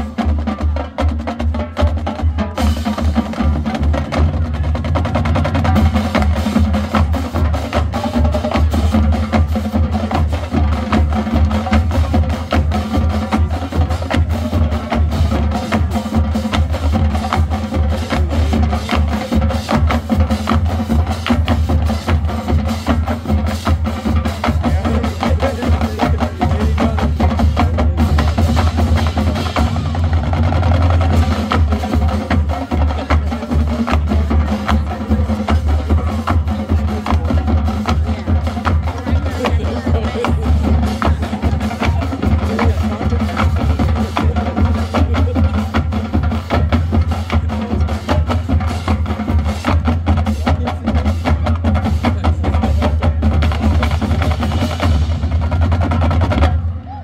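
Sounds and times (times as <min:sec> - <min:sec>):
drumline beat: 0:00.0 - 0:57.0
marching band playing: 0:00.0 - 0:57.0.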